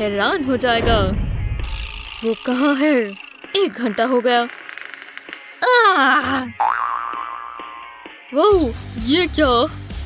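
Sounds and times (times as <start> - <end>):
light backing music: 0.0 - 10.0.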